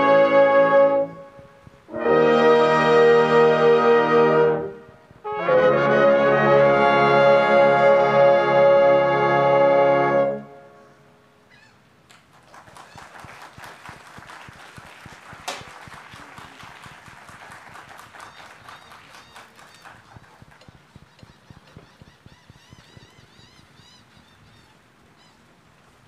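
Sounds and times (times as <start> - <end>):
light applause: 12.0 - 24.2
loud single clap: 12.1 - 21.3.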